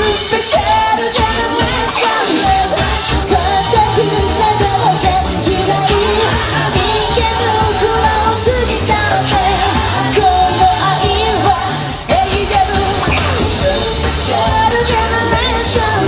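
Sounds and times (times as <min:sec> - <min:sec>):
female group singing into microphones: 0:00.0 - 0:16.0
loud band music: 0:00.0 - 0:16.0.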